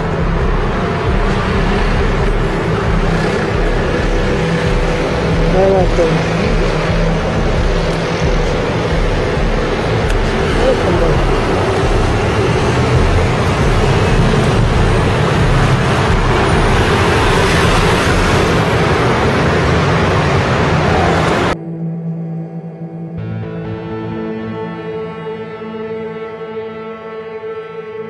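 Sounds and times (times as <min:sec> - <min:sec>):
city traffic rumble: 0:00.0 - 0:21.6.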